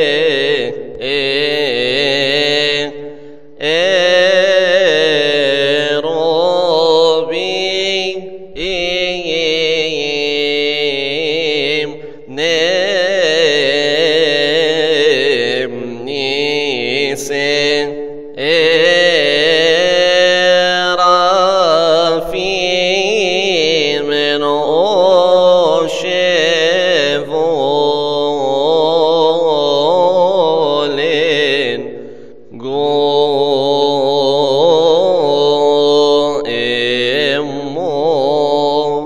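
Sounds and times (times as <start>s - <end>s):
man chanting a hymn: 0.0s - 39.0s.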